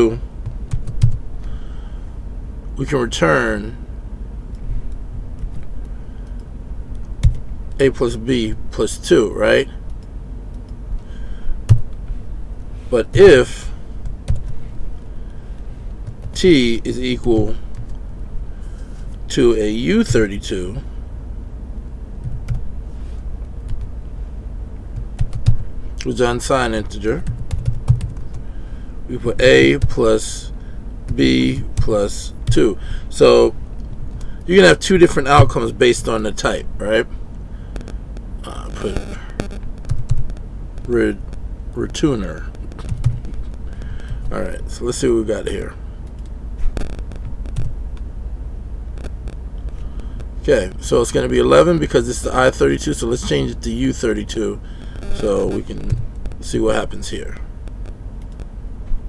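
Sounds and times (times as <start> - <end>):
low background rumble: 0.0 - 59.0
steady low hum: 0.0 - 59.0
computer keyboard keystrokes: 25.0 - 25.6, 27.2 - 28.4, 39.4 - 40.4, 42.6 - 44.4.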